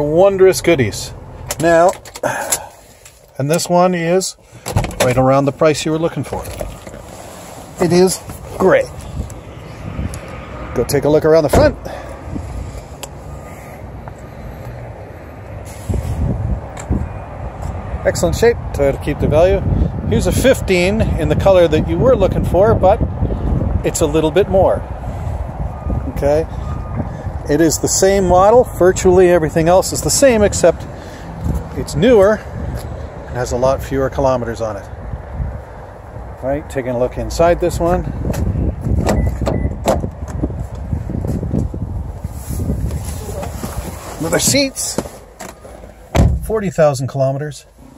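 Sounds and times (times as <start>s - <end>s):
low rumble of traffic: 0.0s - 47.9s
wind noise: 6.2s - 13.4s, 15.5s - 36.7s, 37.4s - 45.1s
car door clicks and knocks: 38.3s - 40.4s, 45.4s - 46.5s.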